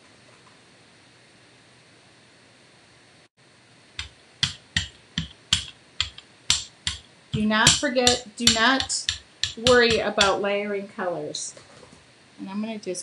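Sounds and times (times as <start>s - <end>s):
room hiss: 0.0s - 13.0s
sharp plastic clicking taps: 4.0s - 10.4s.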